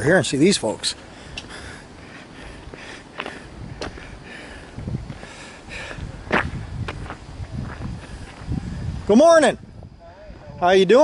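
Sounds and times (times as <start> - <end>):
footsteps on gravel: 1.4 - 8.6.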